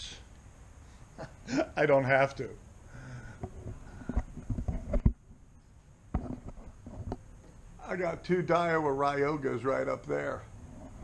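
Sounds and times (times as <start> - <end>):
camera handling knocks and bumps: 3.4 - 5.2, 6.1 - 7.2.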